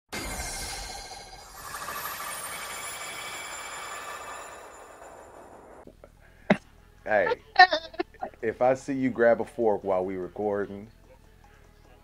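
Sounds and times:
shimmering high electronic tones: 0:00.2 - 0:05.8.

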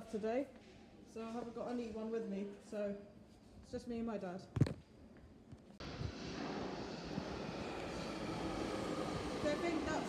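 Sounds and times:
underground train rumble: 0:05.8 - 0:10.0.

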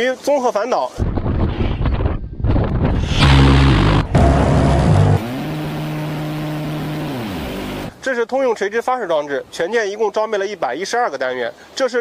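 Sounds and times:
gatling gun firing buzz: 0:03.1 - 0:07.9.

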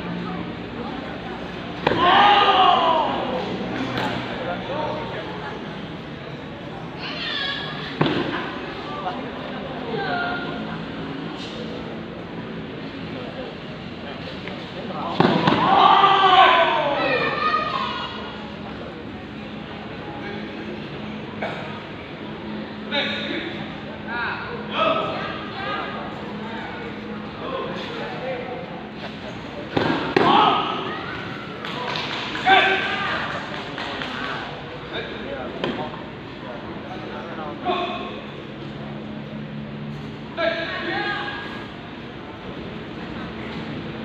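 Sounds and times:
sports hall murmur and hum: 0:00.0 - 0:44.0
voices shouting and calling: 0:00.1 - 0:11.0, 0:15.0 - 0:19.1, 0:22.7 - 0:35.9, 0:36.5 - 0:38.5
person shouting: 0:02.0 - 0:03.3.

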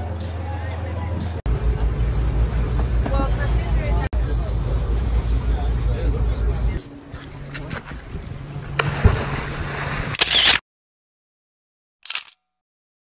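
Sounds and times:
water splashing and sloshing: 0:06.7 - 0:10.5
sharp splash: 0:08.7 - 0:10.6.

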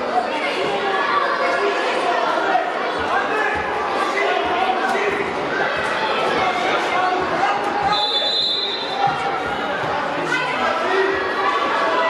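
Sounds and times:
voices echoing in hall: 0:00.0 - 0:12.0.

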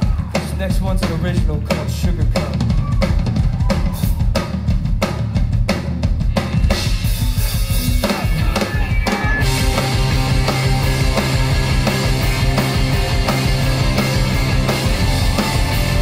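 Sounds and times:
drum kit beat: 0:00.0 - 0:16.0
live rock band: 0:00.0 - 0:16.0
electric guitars: 0:06.3 - 0:16.0.

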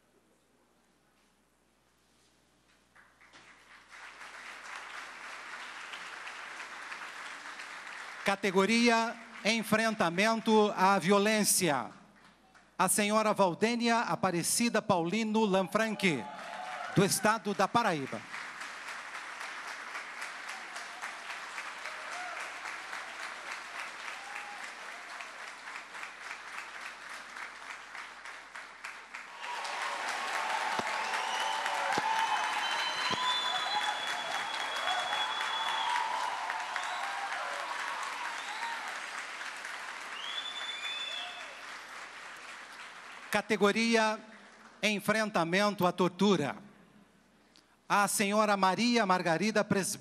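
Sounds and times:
audience applauding: 0:03.0 - 0:10.4, 0:16.0 - 0:44.8
cheering voices: 0:15.8 - 0:17.4, 0:20.4 - 0:25.6, 0:29.3 - 0:39.2
long high whistles: 0:30.7 - 0:37.4, 0:40.1 - 0:41.6.

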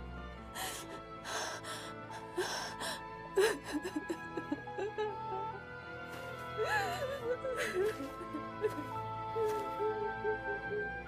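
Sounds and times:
background music: 0:00.0 - 0:11.0
woman crying and sobbing: 0:00.6 - 0:11.0.

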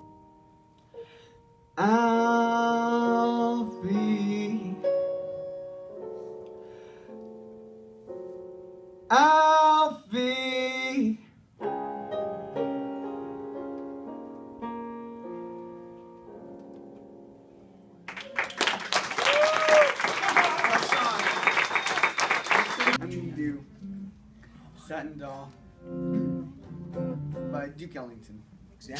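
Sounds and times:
electric keyboard: 0:00.0 - 0:09.4, 0:11.6 - 0:18.6
man singing a slow ballad: 0:01.8 - 0:05.2, 0:09.1 - 0:11.2.

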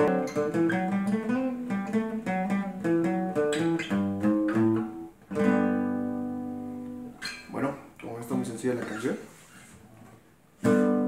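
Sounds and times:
acoustic guitar chord strummed: 0:00.0 - 0:07.6, 0:10.6 - 0:11.0.

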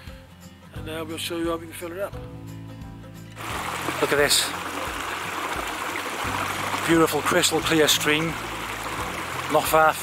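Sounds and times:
background music: 0:00.0 - 0:10.0
stream running over stones: 0:03.4 - 0:10.0.

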